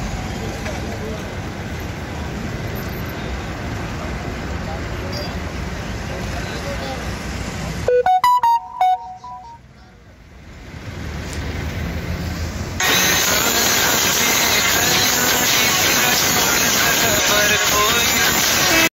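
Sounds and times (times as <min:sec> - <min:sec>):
road traffic: 0:00.0 - 0:18.9
bright piano-like notes: 0:07.9 - 0:09.6.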